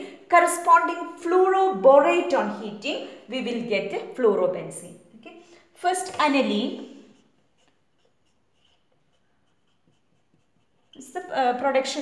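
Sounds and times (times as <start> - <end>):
marker pen scratching on paper: 6.0 - 12.0.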